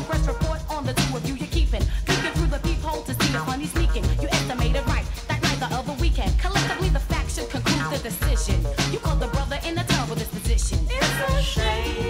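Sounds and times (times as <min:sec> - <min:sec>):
new jack swing music with vocals: 0:00.0 - 0:12.0.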